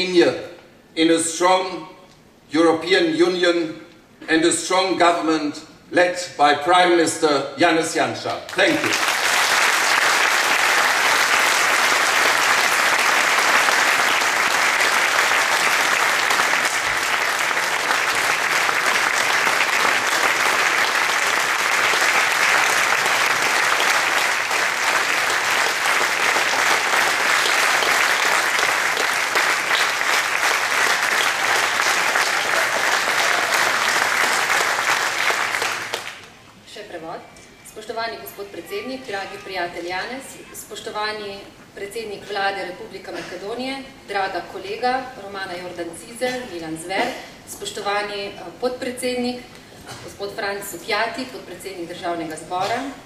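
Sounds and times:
large audience applauding: 8.5 - 36.4.

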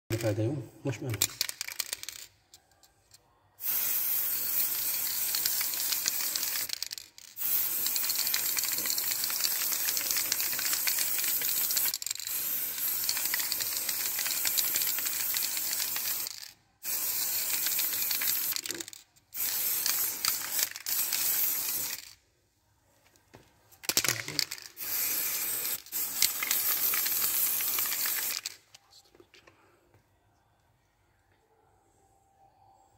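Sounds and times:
spray paint can hissing: 3.6 - 22.2, 23.9 - 28.6.

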